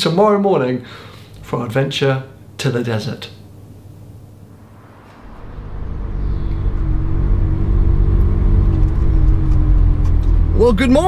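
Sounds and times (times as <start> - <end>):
car engine drone from inside cabin: 4.6 - 11.0.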